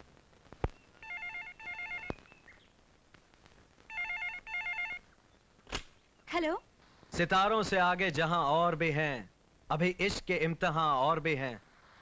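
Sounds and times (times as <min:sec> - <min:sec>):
telephone ringing electronic trill: 0:01.0 - 0:02.1, 0:03.9 - 0:05.0.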